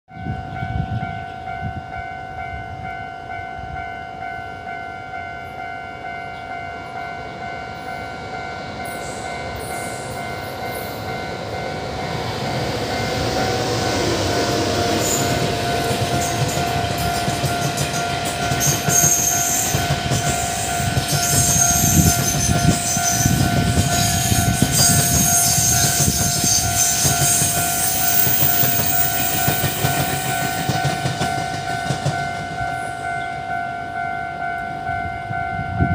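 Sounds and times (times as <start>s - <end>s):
train wheels rumbling over rails: 6.5s - 33.2s.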